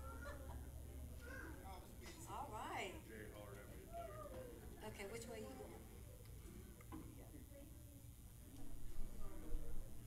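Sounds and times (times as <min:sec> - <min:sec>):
child whining: 0:03.9 - 0:04.5.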